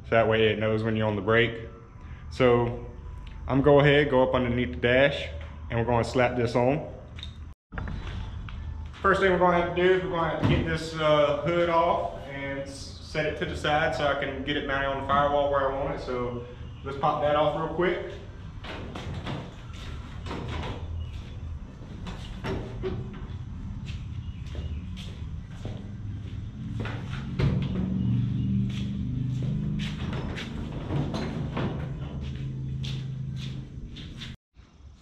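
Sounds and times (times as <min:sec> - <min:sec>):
quiet background music: 0:07.8 - 0:13.0.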